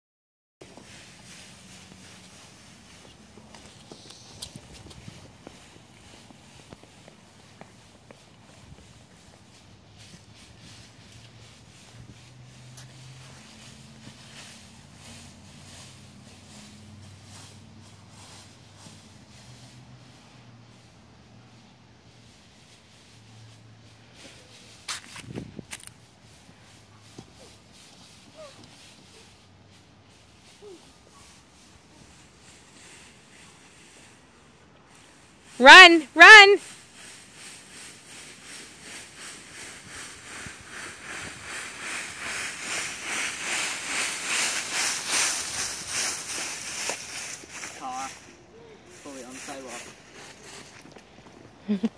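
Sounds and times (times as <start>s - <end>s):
footsteps through dry leaves: 0.6s - 51.9s.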